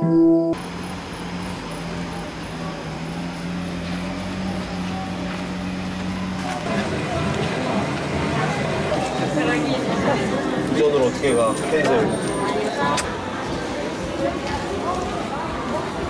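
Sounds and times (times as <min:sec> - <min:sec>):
handpan ringing notes: 0:00.0 - 0:00.6
voices: 0:01.6 - 0:16.0.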